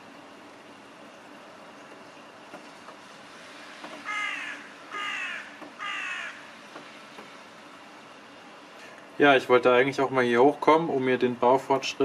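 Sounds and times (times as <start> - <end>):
steady background hiss: 0.0 - 12.0
bird giving harsh calls: 4.0 - 6.5.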